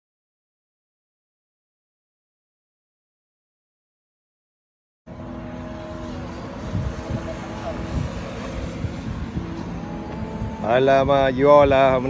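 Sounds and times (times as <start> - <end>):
low mechanical hum with rumble: 5.1 - 12.0.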